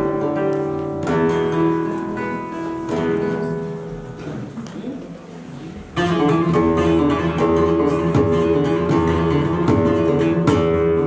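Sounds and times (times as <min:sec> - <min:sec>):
strummed flamenco guitar chords: 0:00.0 - 0:11.0.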